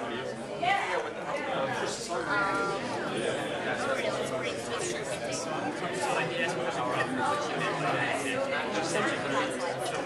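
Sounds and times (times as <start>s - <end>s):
overlapping chatter of people: 0.0s - 10.0s.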